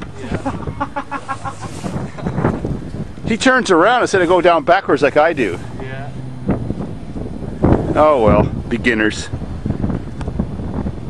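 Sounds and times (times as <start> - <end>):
low rumble: 0.0 - 11.0
person laughing: 0.2 - 2.2.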